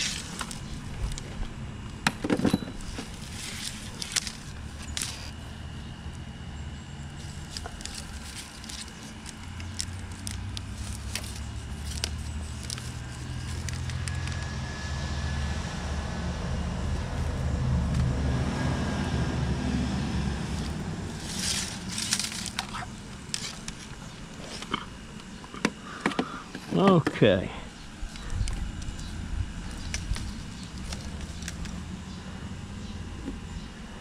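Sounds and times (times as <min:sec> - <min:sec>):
scraping rustle: 0:00.0 - 0:01.6, 0:02.6 - 0:05.5, 0:07.2 - 0:14.4, 0:20.2 - 0:25.1, 0:28.1 - 0:31.8.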